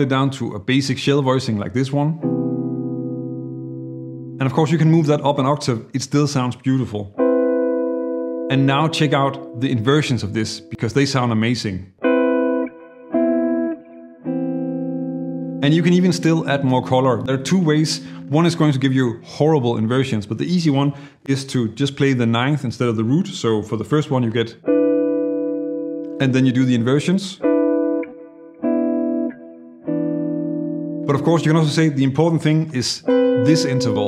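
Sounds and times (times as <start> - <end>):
clean electric guitar chords: 2.1 - 5.2, 7.1 - 11.3, 12.0 - 19.4, 24.6 - 32.1, 33.0 - 34.0.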